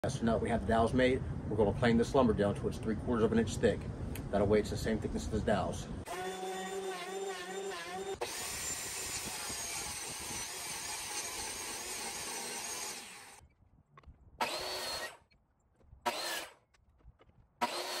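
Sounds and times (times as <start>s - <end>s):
miter saw whining: 6.1s - 13.4s, 14.4s - 15.4s, 16.1s - 16.6s, 17.6s - 18.0s
thickness planer running: 6.1s - 13.4s
table saw ripping board: 16.1s - 16.6s, 17.6s - 18.0s.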